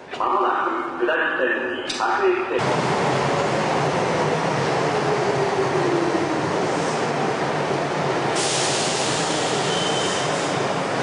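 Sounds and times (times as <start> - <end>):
train rolling noise: 2.6 - 11.0.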